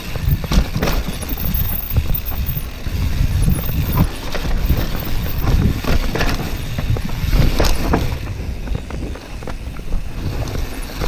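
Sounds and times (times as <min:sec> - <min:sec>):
bike clicks and rattles: 0:00.0 - 0:11.0
tyres rumbling on rock: 0:00.0 - 0:11.0
wind on microphone: 0:00.0 - 0:11.0.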